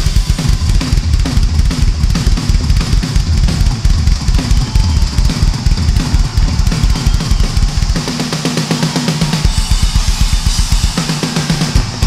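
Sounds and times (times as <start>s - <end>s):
rock drum solo: 0.0s - 12.0s.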